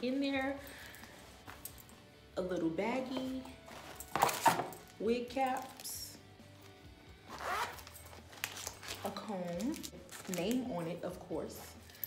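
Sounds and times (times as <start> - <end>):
zipper being pulled open: 7.3 - 10.3.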